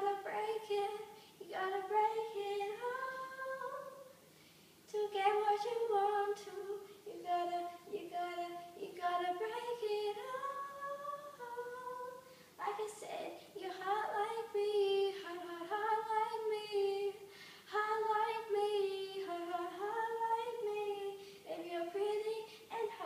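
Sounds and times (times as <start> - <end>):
girl singing unaccompanied: 0.0 - 4.2, 4.9 - 23.0.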